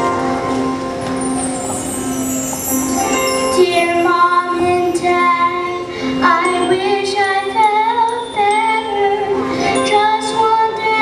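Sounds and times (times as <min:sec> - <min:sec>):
instrumental accompaniment: 0:00.0 - 0:11.0
children singing held notes: 0:01.4 - 0:11.0.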